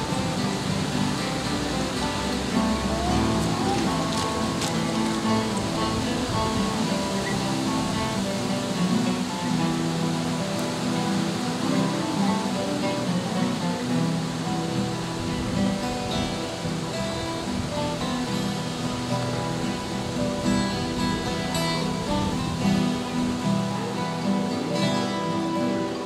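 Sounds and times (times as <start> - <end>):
acoustic guitars playing folk music: 0.0 - 26.0.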